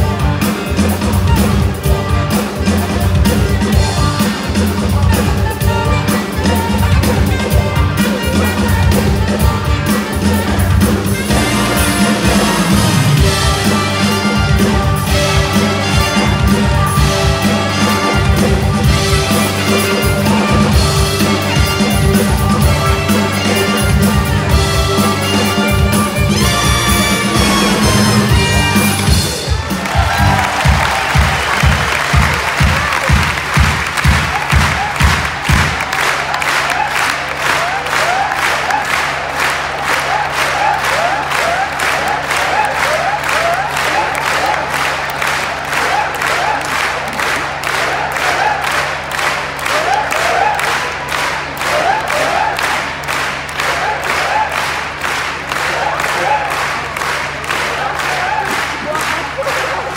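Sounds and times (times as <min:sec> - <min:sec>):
audience applauding and cheering: 0:00.0 - 0:59.9
rhythmic clapping in unison: 0:00.0 - 0:59.9.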